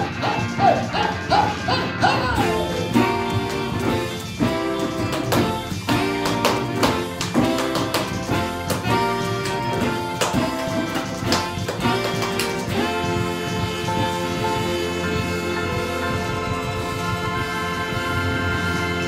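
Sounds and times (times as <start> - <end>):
keyboard chords: 0.0 - 19.0
rock drum beat: 0.0 - 19.0
saxophone: 0.0 - 19.0.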